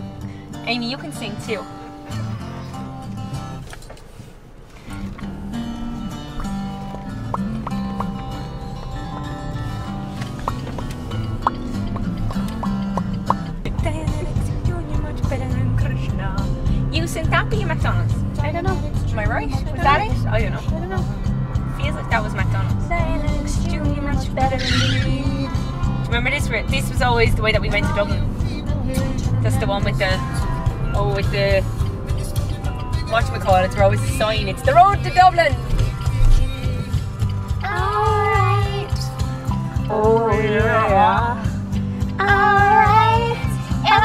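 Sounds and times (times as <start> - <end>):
music on car stereo: 0.0 - 44.0
road rumble: 0.0 - 44.0
voices: 13.7 - 44.0.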